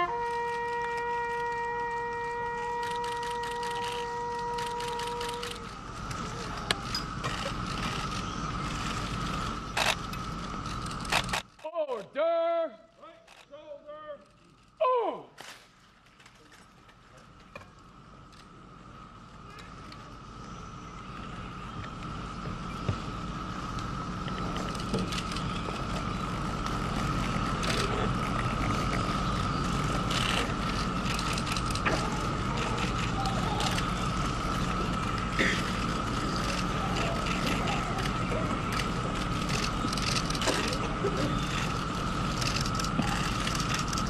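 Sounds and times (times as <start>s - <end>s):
high-pitched hum: 0.0s - 11.4s, 17.5s - 44.0s
camera shutters clicking: 2.8s - 5.8s, 9.7s - 10.2s, 10.9s - 11.6s.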